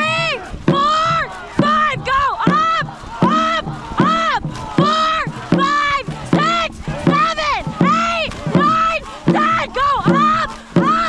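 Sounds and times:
crew shouting in rhythm: 0.0s - 11.0s.

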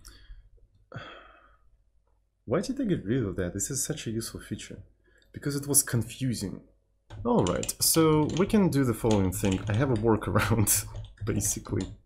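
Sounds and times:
man sighing: 0.9s - 1.6s.

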